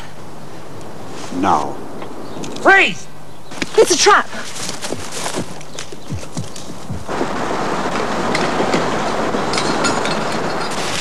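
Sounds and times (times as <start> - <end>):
rustle of leaves and branches: 0.0 - 11.0.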